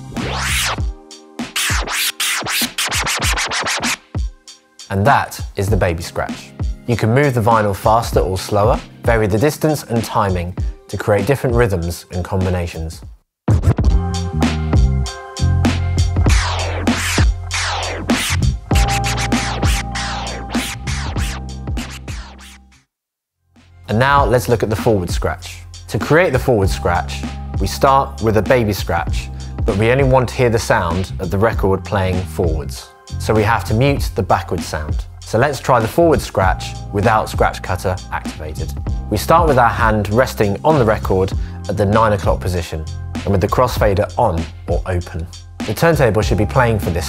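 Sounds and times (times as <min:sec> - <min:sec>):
turntable scratching: 0:00.0 - 0:04.3, 0:13.5 - 0:14.0, 0:16.2 - 0:22.8
bass-heavy backing beat: 0:00.0 - 0:04.5, 0:05.4 - 0:06.9, 0:07.5 - 0:09.4, 0:13.1 - 0:22.8, 0:23.9 - 0:47.0.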